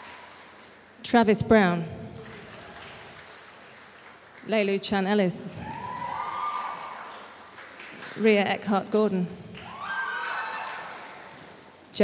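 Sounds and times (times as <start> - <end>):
applause in a hall: 0.0 - 8.8, 9.5 - 12.0.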